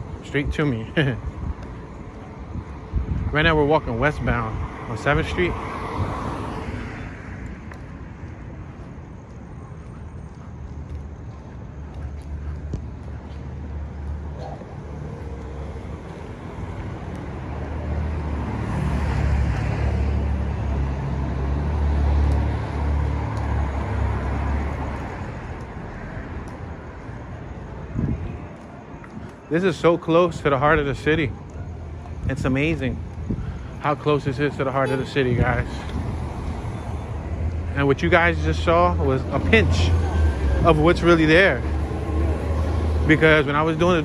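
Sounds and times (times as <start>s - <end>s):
hum of street traffic: 0.0s - 44.0s
vehicle passing by: 12.0s - 26.4s, 33.8s - 44.0s.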